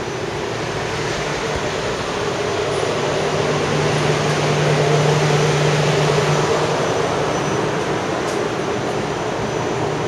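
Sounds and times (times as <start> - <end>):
tram running: 0.0 - 10.0.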